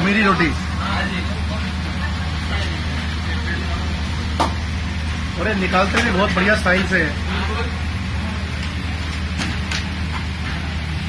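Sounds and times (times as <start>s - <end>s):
faint voices: 0.0s - 9.2s
low machine hum: 0.0s - 11.0s.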